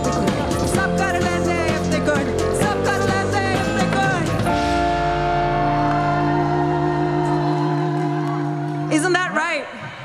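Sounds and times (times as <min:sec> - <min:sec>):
live band ending a song: 0:00.0 - 0:09.0.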